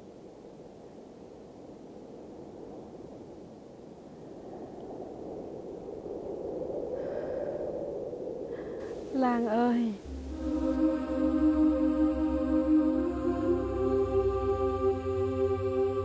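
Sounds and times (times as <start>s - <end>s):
low rushing outdoor noise: 0.0s - 16.0s.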